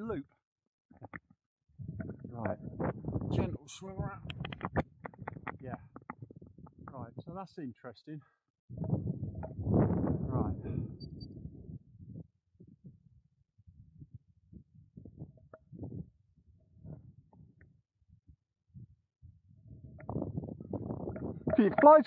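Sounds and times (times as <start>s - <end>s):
wind buffeting microphone: 1.8s - 7.5s, 8.7s - 22.0s.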